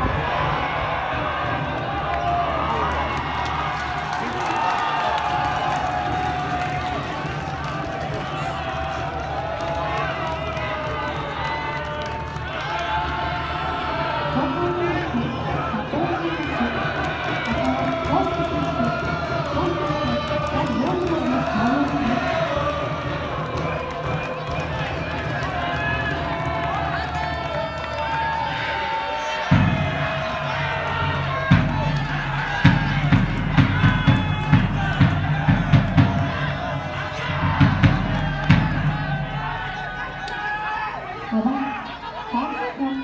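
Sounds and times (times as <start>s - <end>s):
crowd cheering and shouting: 0.0s - 43.0s.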